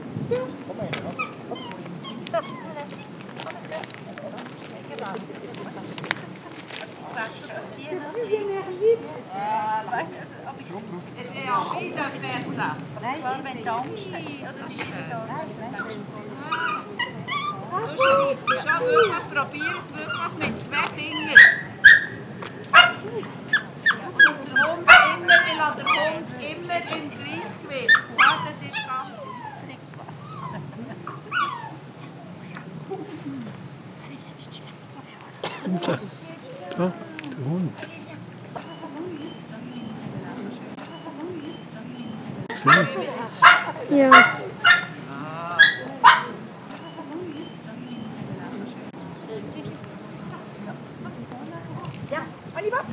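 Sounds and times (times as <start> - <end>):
dog yipping and whining: 0.3 - 0.6, 1.2 - 3.1, 16.5 - 20.3, 21.2 - 22.2, 27.9 - 31.8
dog yelping: 0.3 - 3.2, 15.8 - 20.4, 21.1 - 26.2, 27.3 - 31.8, 42.5 - 45.0, 45.6 - 46.4
dog barking sharply: 21.4 - 23.0, 42.6 - 45.0, 45.6 - 46.3.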